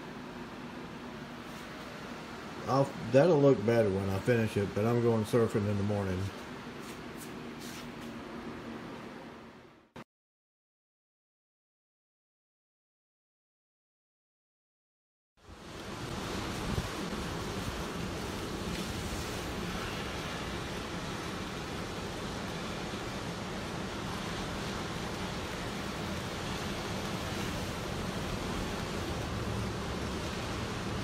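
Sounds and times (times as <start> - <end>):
wind: 0.0 - 9.8, 15.4 - 31.0
surf breaking on a beach: 15.4 - 31.0.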